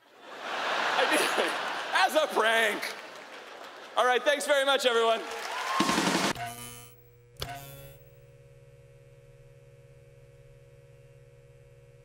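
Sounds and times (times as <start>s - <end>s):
audience applause: 0.0s - 6.4s
low electrical hum: 6.4s - 12.0s.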